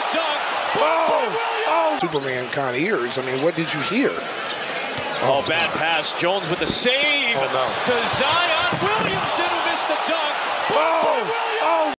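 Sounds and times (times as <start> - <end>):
arena crowd noise: 0.0 - 12.0
excited commentator talking: 5.3 - 12.0.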